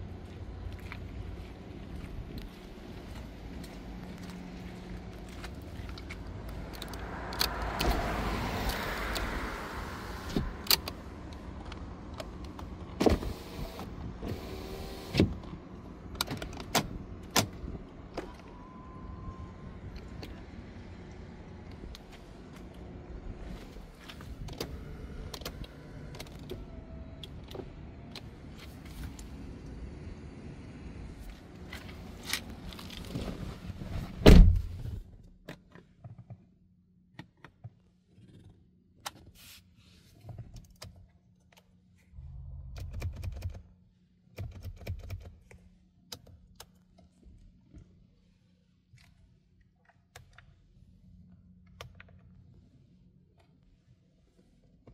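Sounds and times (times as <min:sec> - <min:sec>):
power window motor running: 0:13.1 - 0:15.4.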